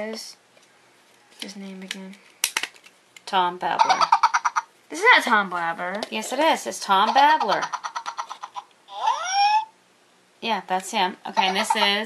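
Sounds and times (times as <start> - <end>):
talking toy rapid patter: 7.0 - 8.6, 11.4 - 12.0
high squeaky rising utterance: 8.9 - 9.8.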